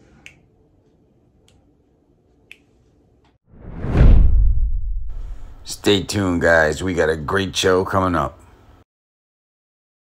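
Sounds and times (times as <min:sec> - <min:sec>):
rising whoosh: 0:03.5 - 0:05.7.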